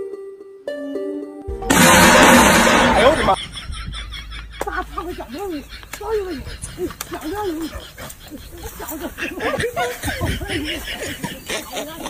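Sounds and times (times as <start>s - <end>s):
people snickering and laughing: 3.4s - 12.0s.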